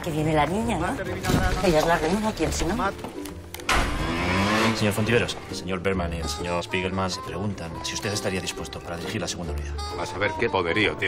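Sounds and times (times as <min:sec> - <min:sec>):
motorbike engine passing by: 0:03.7 - 0:05.5.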